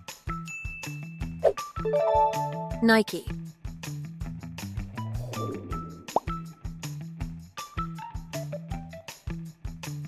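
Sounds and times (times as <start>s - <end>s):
light background music with beat: 0.0s - 10.0s
rising plop sound effect: 5.4s - 6.4s.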